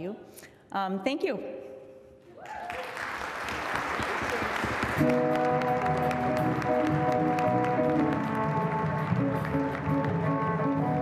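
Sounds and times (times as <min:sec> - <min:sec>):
live instrumental ensemble music: 0:04.2 - 0:11.0.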